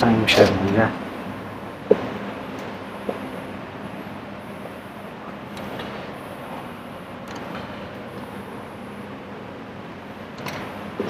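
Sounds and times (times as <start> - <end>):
hall room noise hiss and hum: 0.0 - 11.0.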